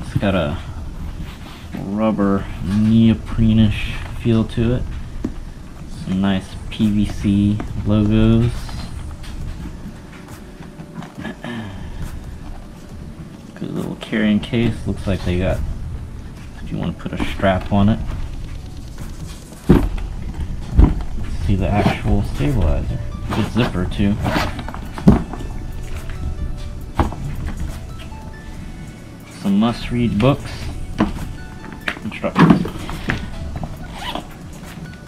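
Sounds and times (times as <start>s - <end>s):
handling rustle: 0.0s - 35.0s
zipper being pulled open: 24.1s - 24.9s, 33.8s - 34.4s.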